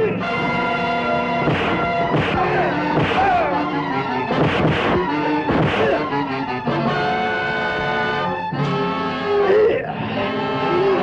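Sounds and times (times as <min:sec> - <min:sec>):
punch sound effects: 0:01.4 - 0:06.1.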